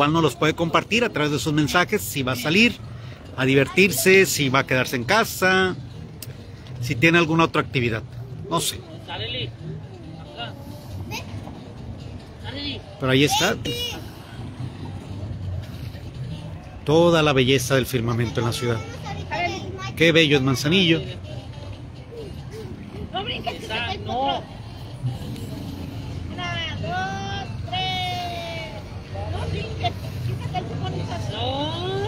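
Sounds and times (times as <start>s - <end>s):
low rumble of traffic: 0.0s - 32.0s
distant people talking: 17.9s - 32.0s.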